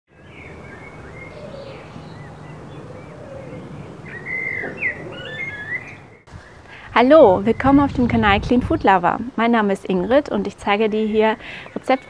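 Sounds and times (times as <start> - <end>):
low background noise: 0.1 - 12.0
songbirds chirping: 0.1 - 12.0.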